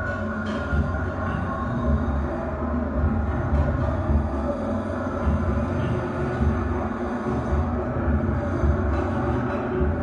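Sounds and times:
low rumbling ambient drone: 0.0 - 10.0.

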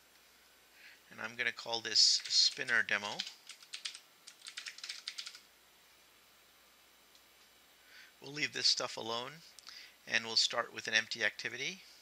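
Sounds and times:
typing on computer keyboard: 2.2 - 5.4.

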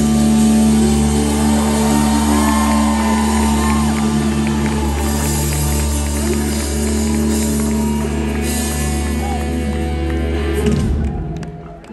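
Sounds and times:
rock band sustained chord: 0.0 - 11.0.

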